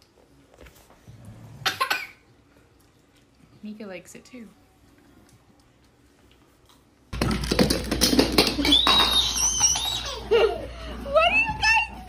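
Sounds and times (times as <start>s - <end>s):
baby laughing and squealing: 8.6s - 10.6s.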